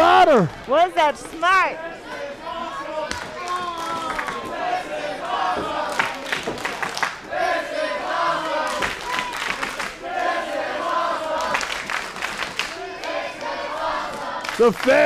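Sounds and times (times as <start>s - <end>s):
crowd shouting and chanting: 0.0s - 11.6s, 12.5s - 15.0s
hand clapping: 3.1s - 4.5s, 5.9s - 7.2s, 8.6s - 10.0s, 11.4s - 15.0s.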